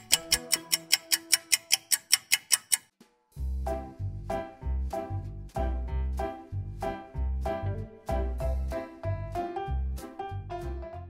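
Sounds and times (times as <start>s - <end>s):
fast clock ticking: 0.0s - 2.9s.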